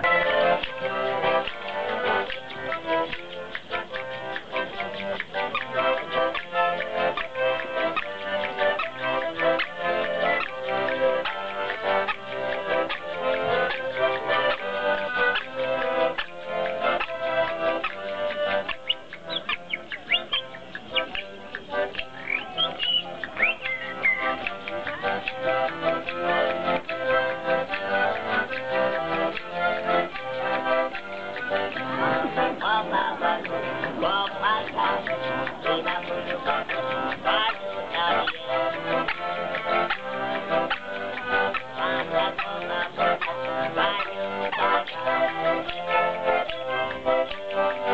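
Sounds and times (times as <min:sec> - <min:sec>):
accordion music: 0:00.0 - 0:47.9
high warbling toy calls: 0:18.8 - 0:24.3.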